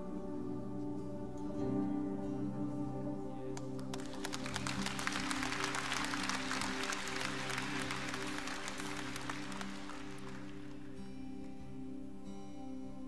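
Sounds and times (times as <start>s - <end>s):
band holding sustained chord: 0.0s - 13.0s
congregation clapping: 3.6s - 11.6s.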